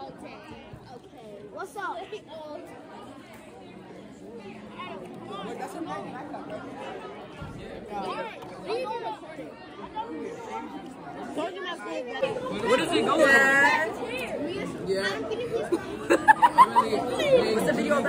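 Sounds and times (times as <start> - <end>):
teenagers chattering: 0.0 - 18.0.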